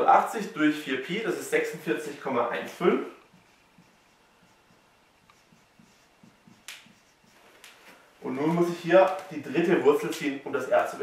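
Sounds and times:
marker writing on whiteboard: 1.4 - 9.7
marker tapping board: 3.2 - 7.8.

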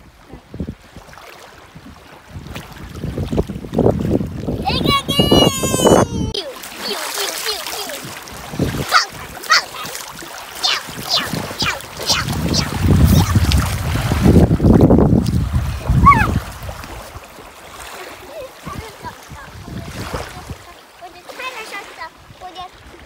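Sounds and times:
seawater splashing: 2.4 - 23.0
child's short cry: 4.9 - 6.6, 8.9 - 9.9, 10.6 - 13.4, 16.0 - 16.4.

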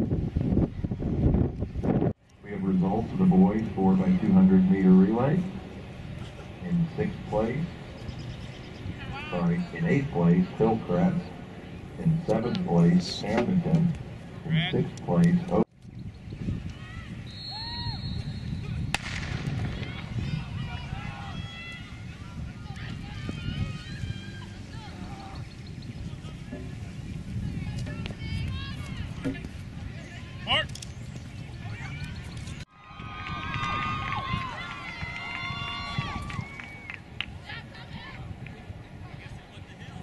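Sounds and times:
background chatter: 2.4 - 15.7, 19.5 - 32.6, 37.3 - 40.0
voices holding long calls: 2.5 - 15.7, 16.7 - 29.3
sharp crack: 18.9 - 20.0.

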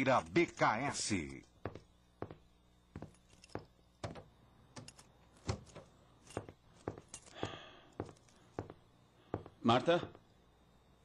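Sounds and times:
footsteps on hard floor: 1.7 - 9.6.

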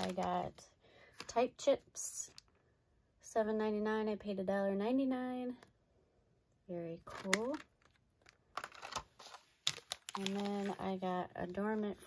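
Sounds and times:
plastic packaging crackling: 0.0 - 0.4, 7.0 - 10.9.

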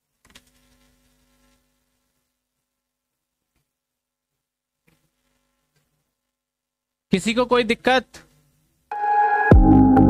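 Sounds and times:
faint buzzing hum: 0.0 - 7.1.

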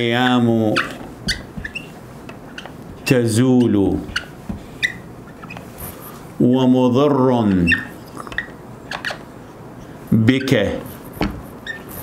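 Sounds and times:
marker squeaking on whiteboard: 0.0 - 6.2, 7.5 - 12.0.

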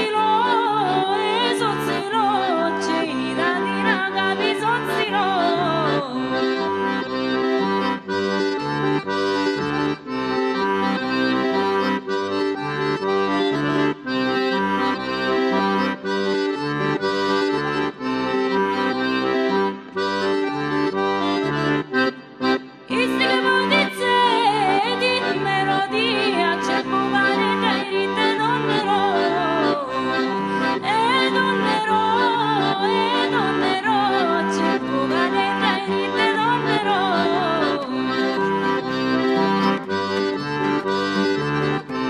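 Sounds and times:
woman singing: 0.0 - 6.6, 22.9 - 38.4
button accordion playing: 0.0 - 42.0.

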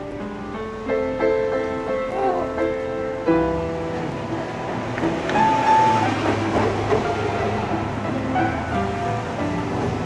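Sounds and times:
heavy vehicle rumbling past: 2.7 - 10.0.

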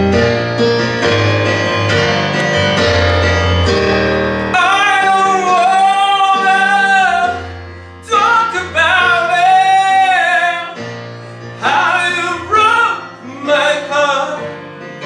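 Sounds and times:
piano accompaniment: 0.0 - 15.0
man singing into a microphone: 4.6 - 10.9, 11.5 - 15.0
singer breathing: 7.6 - 8.0, 10.9 - 11.6.

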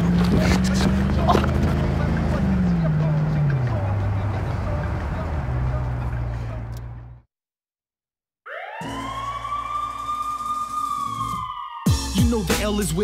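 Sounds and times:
siren wailing: 8.4 - 13.0.

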